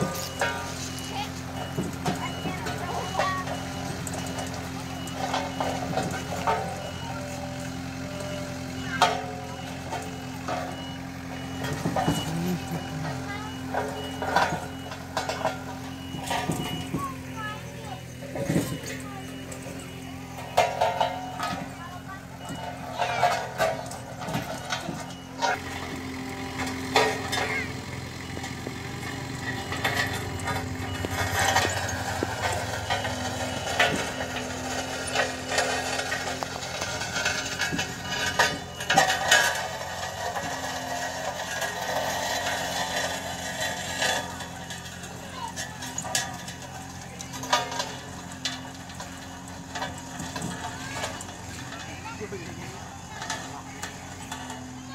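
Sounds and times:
people's voices: 0:00.0 - 0:54.9
road roller diesel engine humming: 0:00.0 - 0:54.9.

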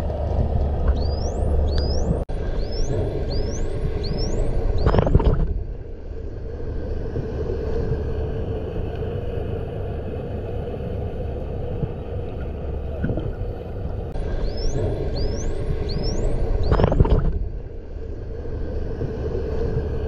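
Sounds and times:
underwater rumble with hum: 0:00.0 - 0:20.0
dolphin whistles: 0:00.9 - 0:05.3, 0:14.4 - 0:17.1.

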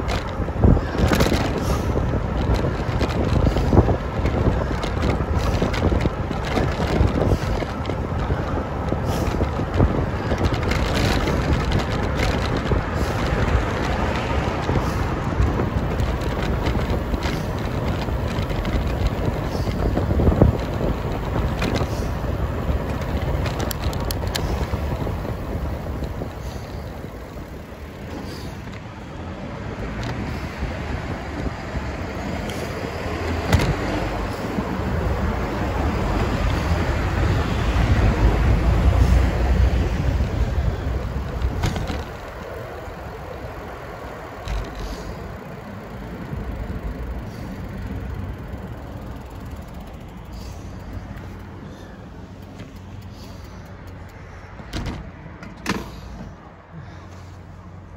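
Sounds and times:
cars passing: 0:00.0 - 0:57.9
wind rumbling on microphone: 0:00.0 - 0:57.9.

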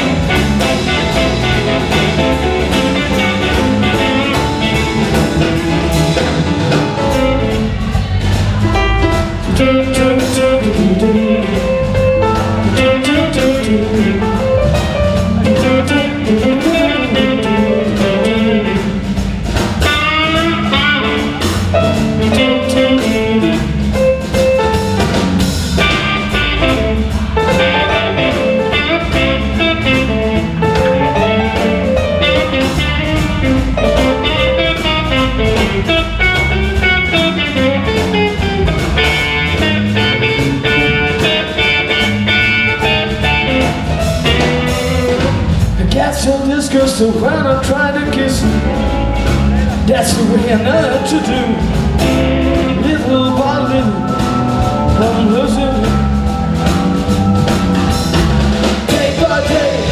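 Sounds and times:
live blues band: 0:00.0 - 0:59.9
electric guitar lines: 0:08.8 - 0:45.8.

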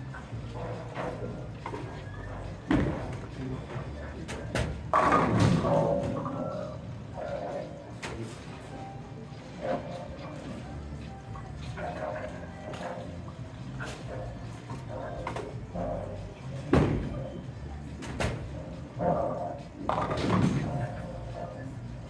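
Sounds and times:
bowling alley din: 0:00.2 - 0:10.6, 0:11.6 - 0:17.4, 0:18.0 - 0:22.0.

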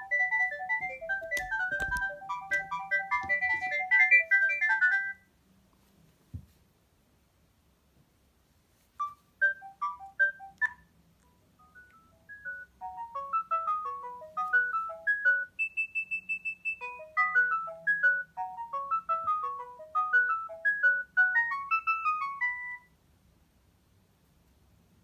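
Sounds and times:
mobile phone ringtone melody: 0:00.0 - 0:05.2, 0:09.0 - 0:22.9.

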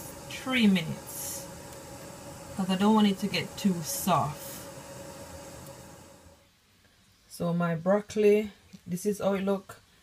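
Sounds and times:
pot of water cooking hiss: 0:00.0 - 0:06.5.

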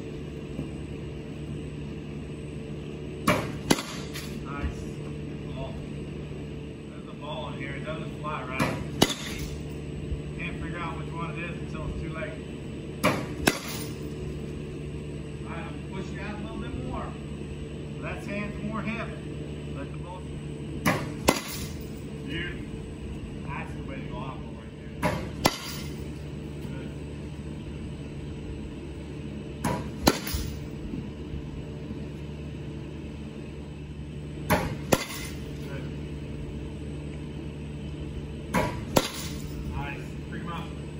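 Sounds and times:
steady low hum: 0:00.0 - 0:40.9
bat cracking against ball: 0:03.2 - 0:04.4, 0:08.6 - 0:09.6, 0:13.0 - 0:14.0, 0:20.8 - 0:21.9, 0:25.0 - 0:26.1, 0:29.6 - 0:30.7, 0:34.4 - 0:35.6, 0:38.5 - 0:39.6.

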